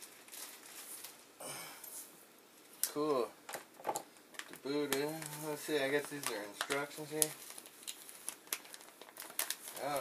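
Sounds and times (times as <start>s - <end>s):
packaging crinkling in a bag: 0.0s - 1.4s, 4.3s - 10.0s.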